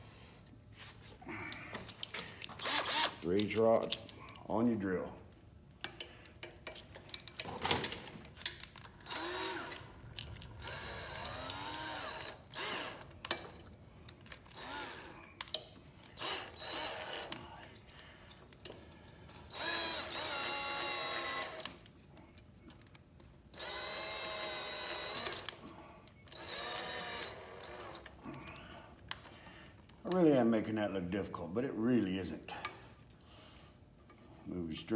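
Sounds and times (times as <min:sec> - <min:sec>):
drill clicks: 0:02.4 - 0:04.0, 0:08.6 - 0:13.6, 0:14.3 - 0:15.5, 0:16.1 - 0:17.4, 0:19.4 - 0:21.9, 0:23.5 - 0:25.6, 0:26.3 - 0:28.1
cordless drill motor whining: 0:02.6 - 0:03.2, 0:08.8 - 0:13.6, 0:14.4 - 0:15.3, 0:16.0 - 0:17.4, 0:19.4 - 0:21.8, 0:23.3 - 0:25.6, 0:26.2 - 0:28.2.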